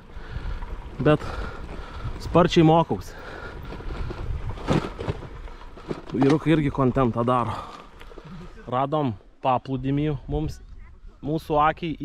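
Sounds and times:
bicycle rolling on gravel: 0.0 - 9.0
wind rumble on microphone: 3.4 - 5.5, 9.9 - 12.0.

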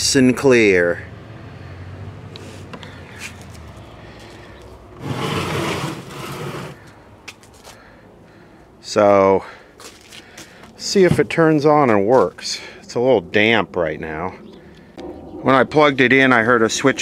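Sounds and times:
rubbing rustle: 5.0 - 6.9
low steady hum: 12.6 - 17.0.

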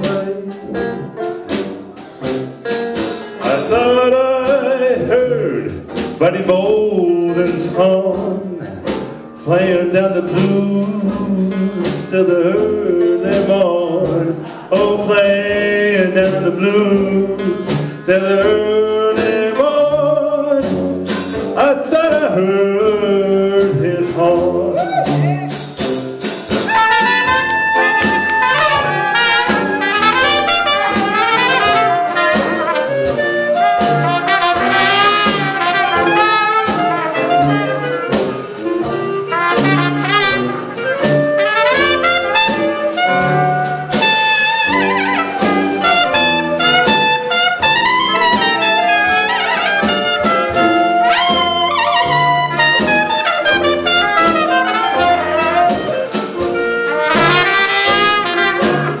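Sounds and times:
drums: 0.0 - 59.0
tuba: 0.0 - 59.0
trumpets leading: 26.6 - 59.0.

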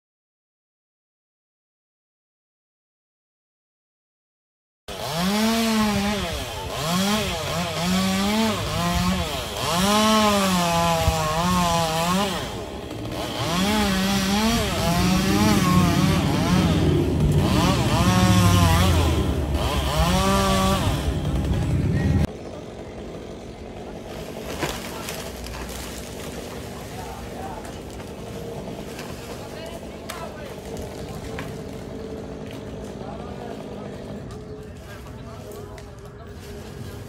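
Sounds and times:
chainsaw cutting wood: 4.9 - 34.6.

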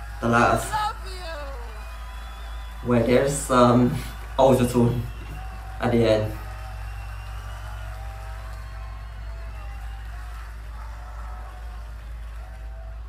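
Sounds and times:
crowd: 0.0 - 13.0
pitched voices: 0.2 - 1.8.

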